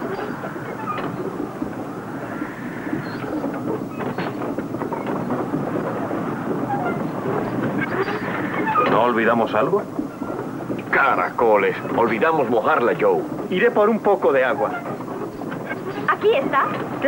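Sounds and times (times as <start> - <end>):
water pump working: 5.4 - 17.0.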